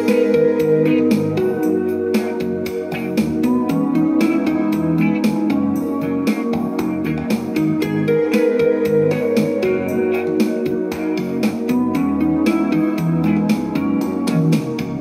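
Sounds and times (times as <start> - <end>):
music with a steady beat: 0.0 - 15.0.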